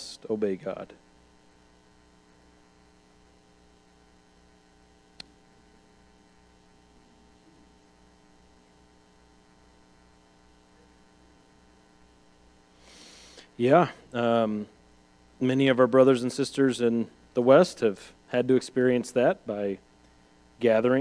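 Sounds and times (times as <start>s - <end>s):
electrical mains hum: 0.0s - 21.0s.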